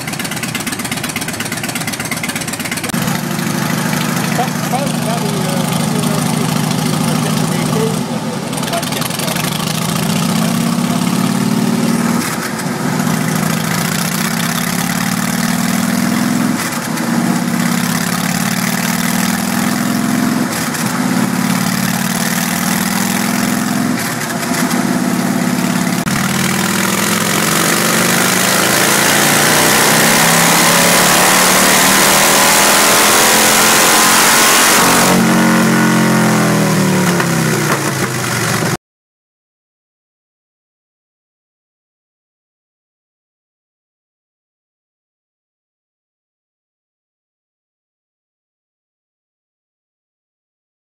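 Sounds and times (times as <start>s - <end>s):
motorcycle engine revving: 0.0s - 38.8s.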